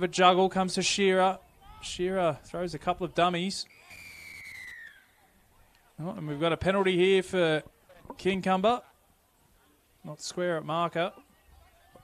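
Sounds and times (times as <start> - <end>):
referee's whistle long blast: 3.7 - 5.1.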